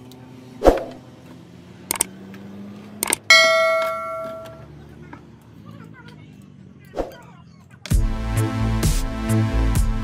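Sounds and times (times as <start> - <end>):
quick clicks: 1.9 - 2.1, 3.0 - 3.3
bell chime: 3.3 - 4.6.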